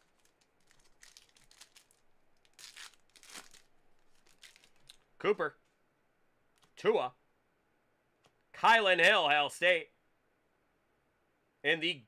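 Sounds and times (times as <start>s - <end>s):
foil wrapper tearing and crinkling: 0.0s - 5.0s.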